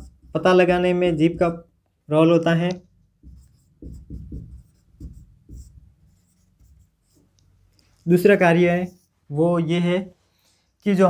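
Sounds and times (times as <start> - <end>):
marker scratching on whiteboard: 0.0 - 1.7, 2.6 - 9.4.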